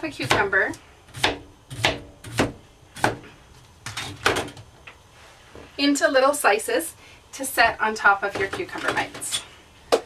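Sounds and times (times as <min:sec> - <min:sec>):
cutter chopping on cutting board: 0:01.1 - 0:03.2.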